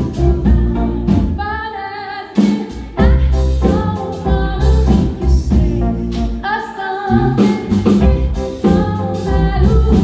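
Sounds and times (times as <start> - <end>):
electric bass: 0.0 - 1.5, 3.0 - 6.5, 7.1 - 10.0
drum kit: 0.0 - 10.0
woman singing: 0.0 - 10.0.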